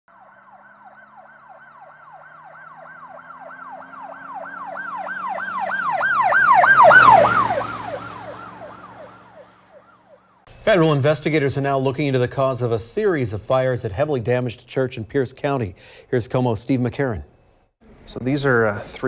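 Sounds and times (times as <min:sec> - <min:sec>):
emergency siren yelping: 0:00.1 - 0:10.5
vehicle engine: 0:00.1 - 0:10.6.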